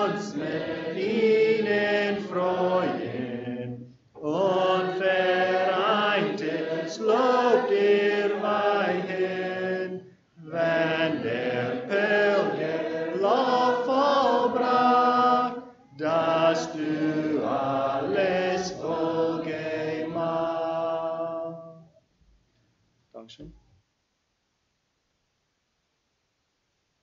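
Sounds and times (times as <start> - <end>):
voices singing a hymn: 0.0 - 22.0.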